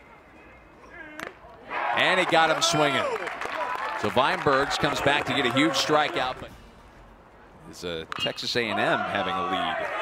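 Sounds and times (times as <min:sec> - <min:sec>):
crowd shouting: 0:08.8 - 0:10.0.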